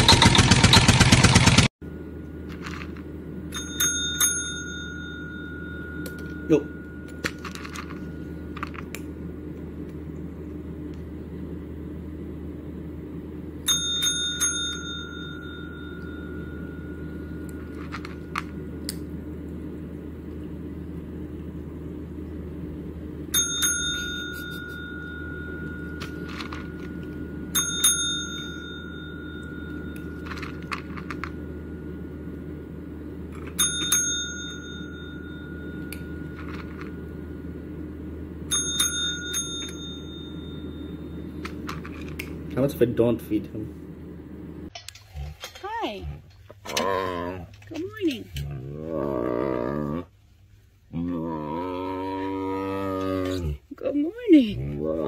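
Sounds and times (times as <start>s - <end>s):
steady low hum: 0.0s - 55.0s
tap bell dinging: 3.5s - 8.1s, 13.7s - 18.6s, 23.3s - 31.5s, 33.4s - 37.1s, 38.5s - 41.0s.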